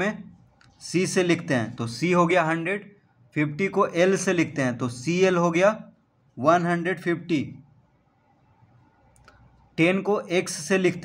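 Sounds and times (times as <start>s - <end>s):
man speaking: 0.0s - 7.6s, 9.8s - 11.0s.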